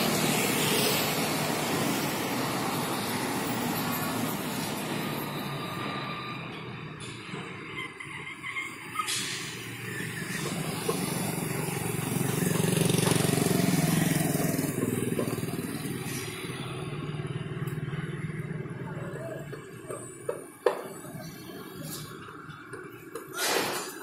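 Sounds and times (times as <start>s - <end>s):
heavy vehicle engine running: 0.0s - 24.0s.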